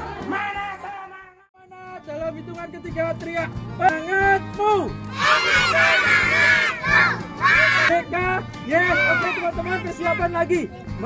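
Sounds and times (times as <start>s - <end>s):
children shouting together: 5.1s - 7.9s, 8.9s - 9.5s.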